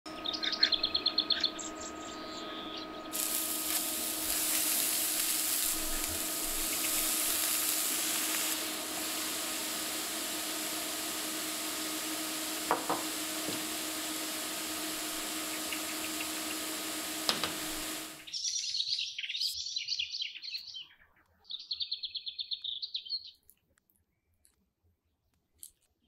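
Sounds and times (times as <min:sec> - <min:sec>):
high chirps: 0:00.1 - 0:17.0
faint steady hum: 0:00.1 - 0:18.4
burger patties sizzling on griddle: 0:03.1 - 0:18.3.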